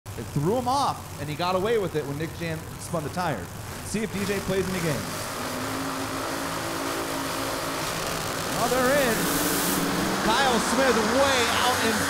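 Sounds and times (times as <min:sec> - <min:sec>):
race car engines idling: 0:00.2 - 0:12.0.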